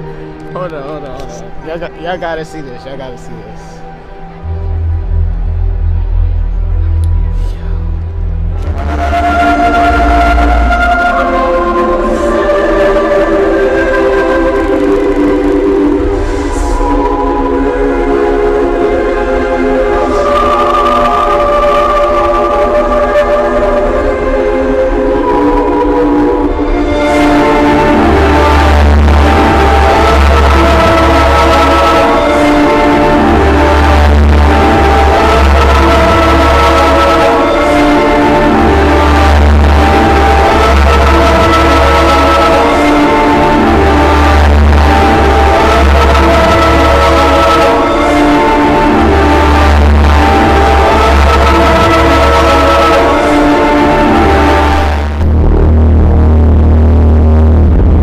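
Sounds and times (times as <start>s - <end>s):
loud live concert music: 3.4s - 58.0s.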